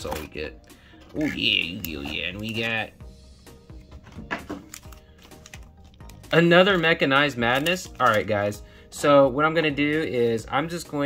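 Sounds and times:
quiet background music: 0.0 - 11.0
foil packs crinkling: 1.4 - 2.9, 4.5 - 8.6.

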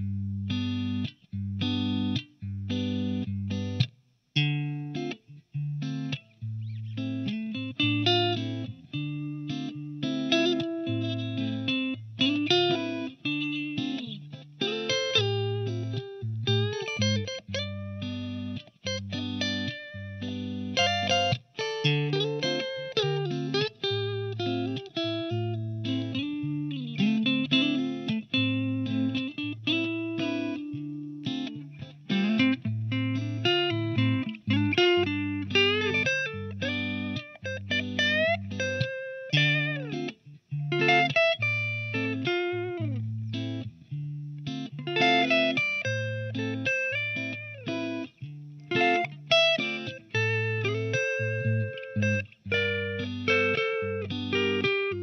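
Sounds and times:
clean electric guitar: 0.0 - 55.0.

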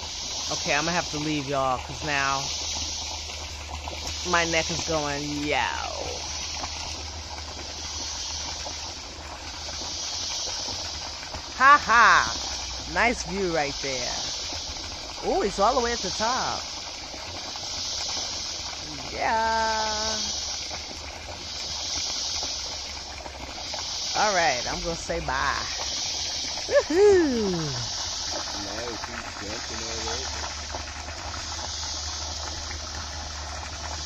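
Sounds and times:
high hiss: 0.0 - 34.0
low constant hum: 0.0 - 34.0
person saying yeah: 26.7 - 27.9.

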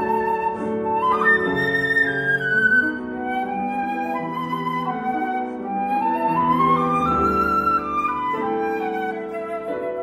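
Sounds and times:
flute melody: 0.0 - 10.0.

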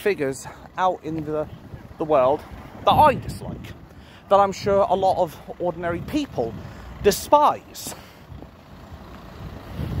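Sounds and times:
road traffic rumble: 0.0 - 10.0
vehicle passing: 0.4 - 10.0.

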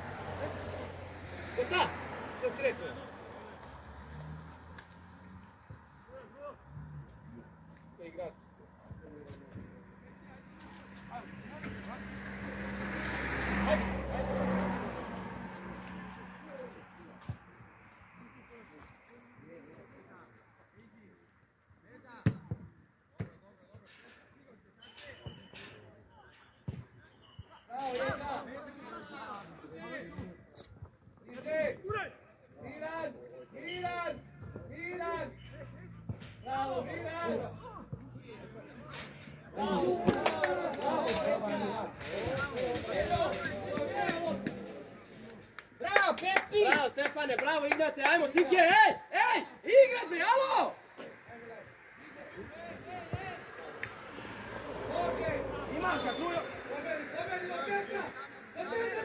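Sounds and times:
vehicle passing: 0.0 - 8.8, 9.6 - 20.3, 33.8 - 48.3, 49.6 - 59.0
players shouting: 39.5 - 44.8, 45.8 - 59.0.

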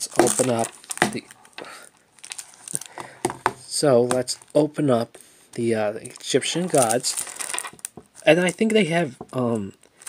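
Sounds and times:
plastic wrapping crackling: 0.0 - 10.0.

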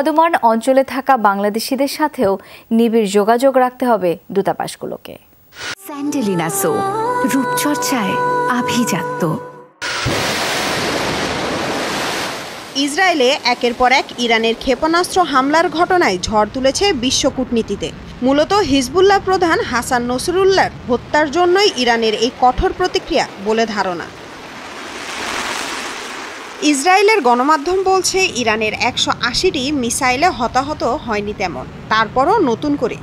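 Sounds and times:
missile launch exhaust rushing: 9.8 - 12.5, 24.2 - 26.6.

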